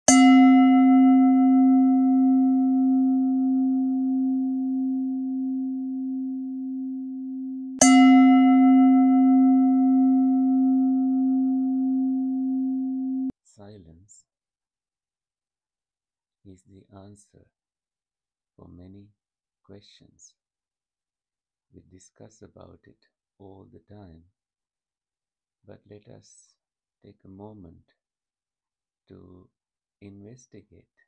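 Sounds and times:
singing bowl ringing: 0.0 - 13.3.

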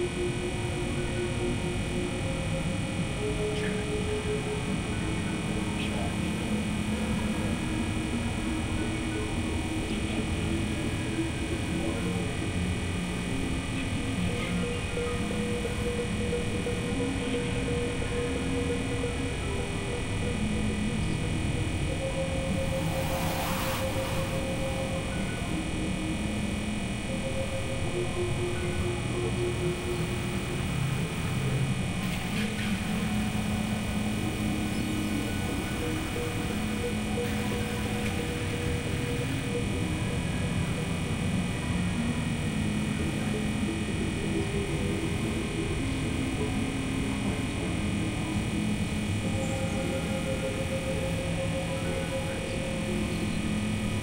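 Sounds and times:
synthesizer drone music: 19.2 - 40.5
brief noisy swishes: 22.6 - 24.6.

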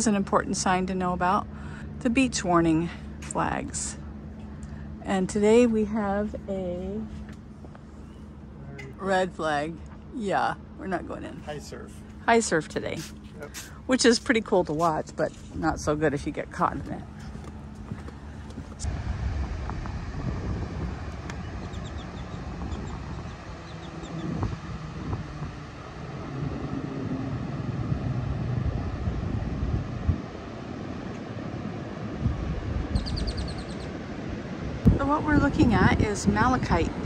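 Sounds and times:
wind buffeting microphone: 13.8 - 37.0.

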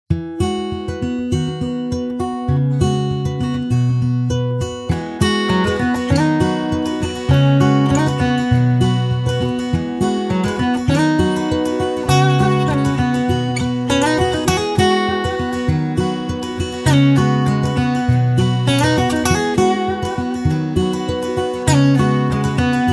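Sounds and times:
acoustic guitar music: 0.1 - 22.9.

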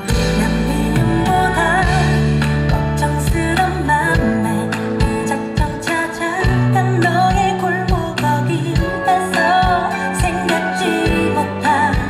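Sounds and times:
band playing pop ballad: 0.0 - 12.0
person singing with vibrato: 0.0 - 12.0.

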